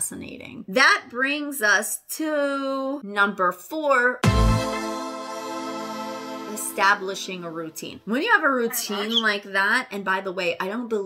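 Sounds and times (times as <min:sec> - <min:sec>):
deep bass hit: 0:04.2 - 0:05.8
sustained synth chord: 0:04.2 - 0:08.1.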